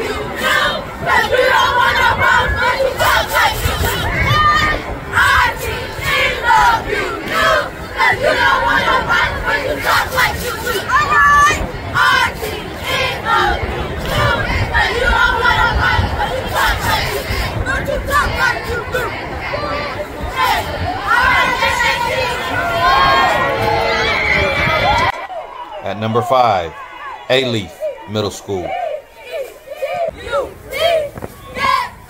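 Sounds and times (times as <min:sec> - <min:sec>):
cheerleaders chanting a cheer: 0:00.0 - 0:32.0.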